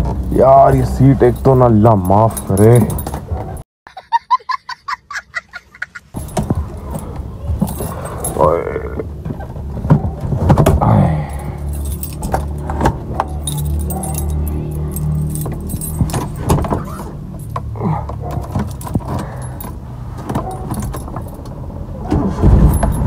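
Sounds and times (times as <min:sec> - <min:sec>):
car keys jangling and clicking: 0:00.4 - 0:03.6, 0:06.1 - 0:09.0, 0:11.2 - 0:21.6, 0:22.3 - 0:23.0.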